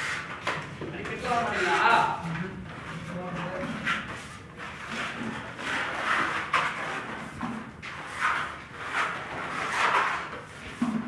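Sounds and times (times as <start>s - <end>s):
putty blades scraping wall: 3.2s - 11.0s.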